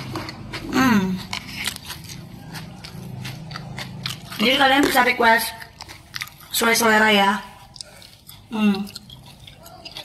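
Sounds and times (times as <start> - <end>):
potato chips crunching: 0.0 - 10.0.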